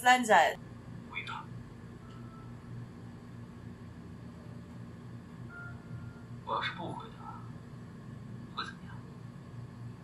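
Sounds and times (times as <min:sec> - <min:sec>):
low steady hum: 0:00.0 - 0:10.0
person speaking quietly: 0:06.5 - 0:07.4.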